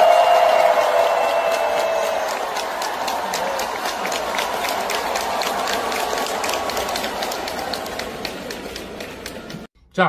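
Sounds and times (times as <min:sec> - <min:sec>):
crowd cheering: 0:00.0 - 0:09.7
crowd clapping: 0:00.0 - 0:09.7.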